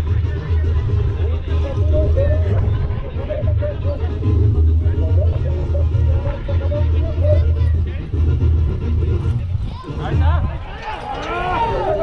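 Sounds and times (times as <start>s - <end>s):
indistinct voices: 0.0s - 12.0s.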